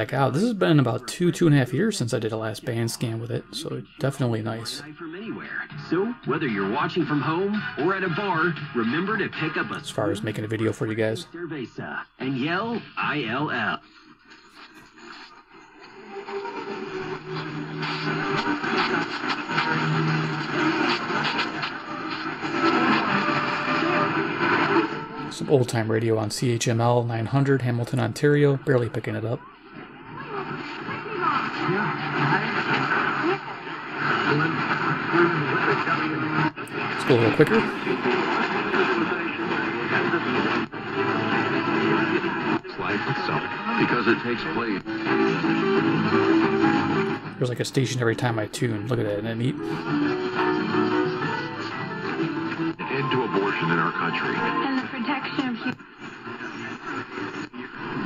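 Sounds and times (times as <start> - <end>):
faint voices on radio: 0.0 - 15.9, 17.4 - 27.9, 28.5 - 58.0
radio static and interference: 0.0 - 58.0.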